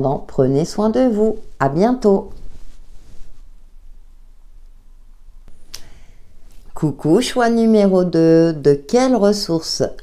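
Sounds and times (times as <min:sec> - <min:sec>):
faint click: 0:05.5 - 0:05.9.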